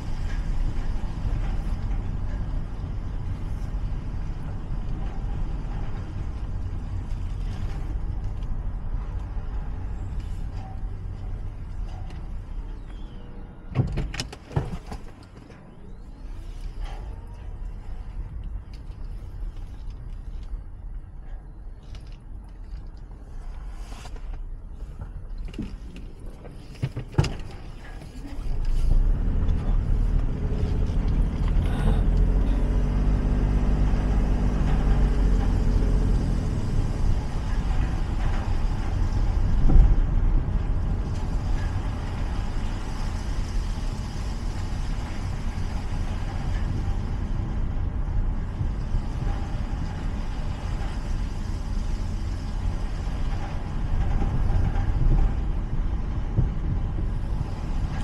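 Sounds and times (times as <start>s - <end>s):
car engine and tyre rumble: 0.0s - 58.0s.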